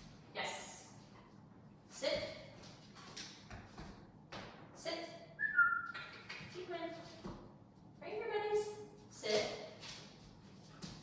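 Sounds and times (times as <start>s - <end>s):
short whistled note: 5.4s - 6.0s.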